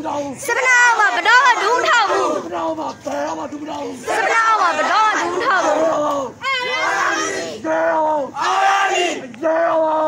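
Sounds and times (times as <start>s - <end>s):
protesters chanting: 0.0s - 10.0s.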